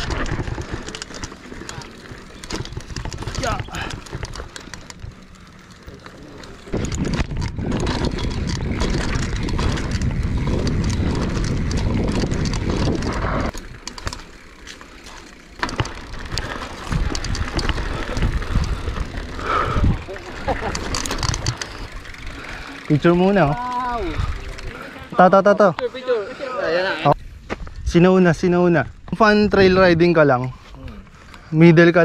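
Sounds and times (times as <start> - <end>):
bike clicks and knocks: 0.0 - 25.9
wind and tyre rush: 0.0 - 32.0
wind on microphone: 6.7 - 13.6, 16.2 - 21.6.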